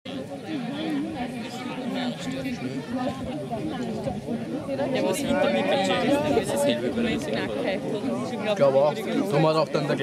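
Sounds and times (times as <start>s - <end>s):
voices chattering: 0.1s - 10.0s.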